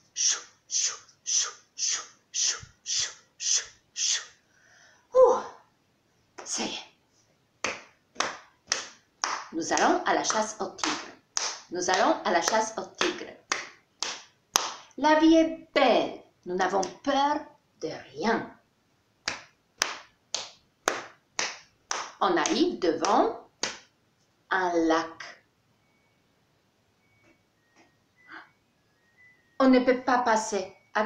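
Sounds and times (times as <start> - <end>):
person making swishing sounds: 0.1 - 4.4
hand snaps or claps: 7.6 - 14.9, 19.2 - 23.9.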